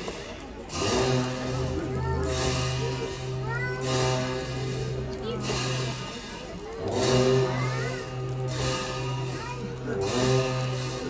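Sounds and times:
cymbal crashes: 0.7 - 11.0
long horns droning: 0.7 - 11.0.

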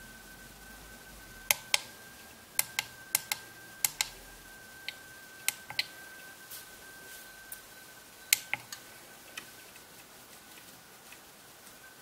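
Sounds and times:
push buttons clicking: 2.6 - 4.2.

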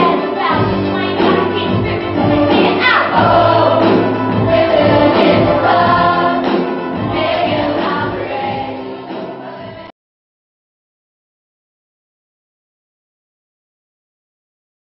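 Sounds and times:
musical accompaniment: 0.0 - 9.9
youth choir singing: 0.0 - 9.9.

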